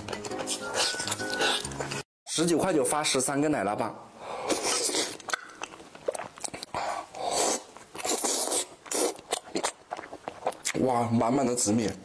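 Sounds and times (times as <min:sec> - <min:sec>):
chewing bread: 0:04.9 - 0:10.8.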